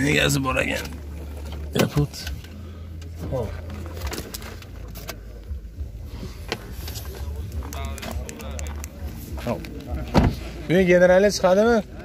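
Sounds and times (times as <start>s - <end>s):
people talking: 0.0s - 0.9s, 7.0s - 12.0s.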